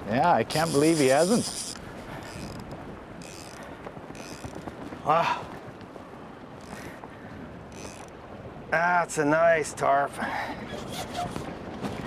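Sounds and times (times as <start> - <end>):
wind noise on microphone: 0.0 - 9.1, 10.3 - 12.0.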